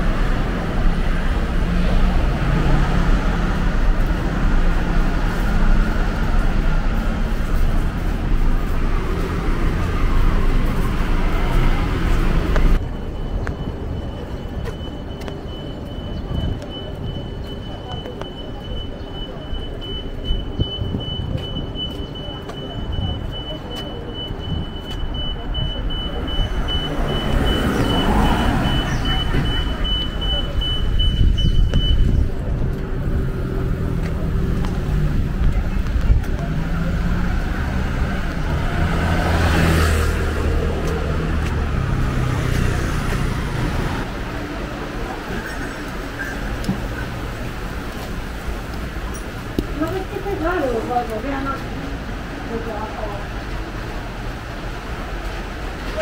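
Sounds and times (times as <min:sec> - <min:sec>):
vehicles passing: 0:00.0 - 0:56.0.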